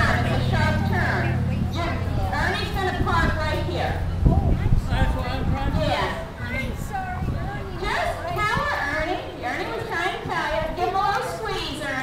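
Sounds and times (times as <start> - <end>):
children's voices: 0.0 - 12.0
indistinct talking: 0.0 - 12.0.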